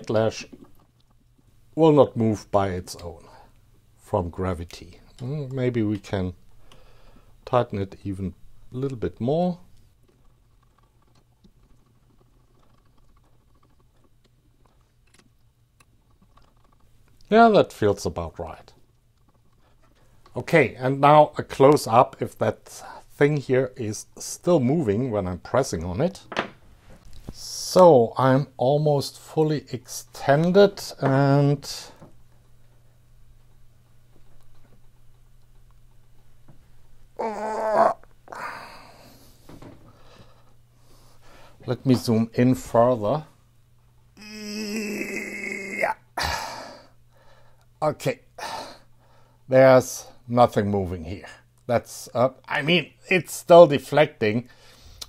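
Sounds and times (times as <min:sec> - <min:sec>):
faint low hum: 0:00.0 - 0:55.0
man's wordless vocal sound: 0:44.2 - 0:46.9.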